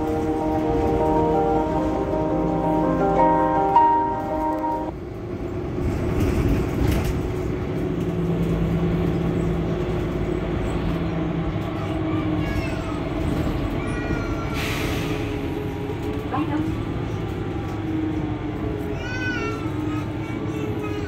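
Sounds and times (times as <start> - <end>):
bus engine idling: 0.0 - 21.0.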